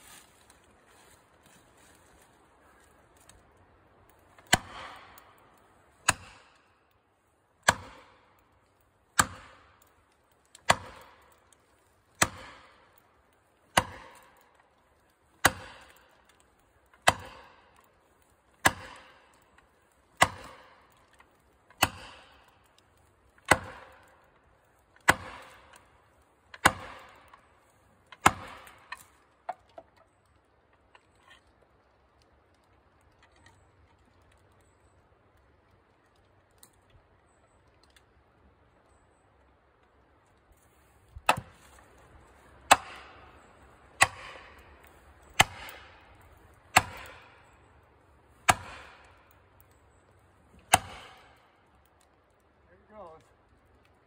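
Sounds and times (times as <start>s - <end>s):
axe striking plastic wedge: 41.2s - 41.5s.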